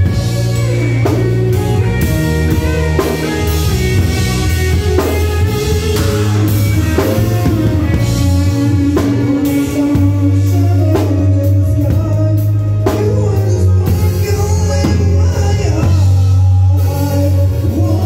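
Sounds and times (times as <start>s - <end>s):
drum kit playing: 0.0s - 18.0s
electric guitar: 0.0s - 18.0s
low sustained bass notes: 0.0s - 18.0s.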